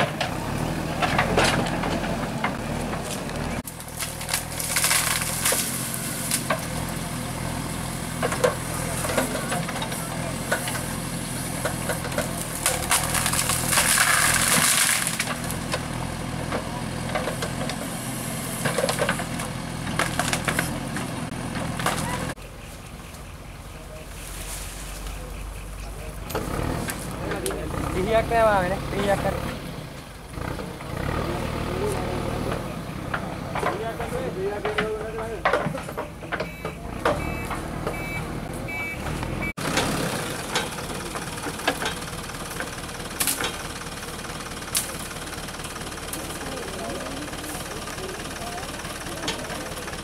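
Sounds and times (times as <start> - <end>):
diesel engine running: 0.0 - 50.0
branches snapping: 1.0 - 7.0, 11.6 - 15.9, 18.6 - 22.2, 40.5 - 43.7, 44.7 - 45.2.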